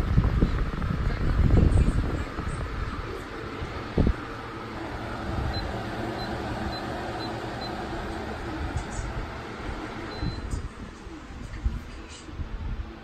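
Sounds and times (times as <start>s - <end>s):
fan whirring: 0.0s - 13.0s.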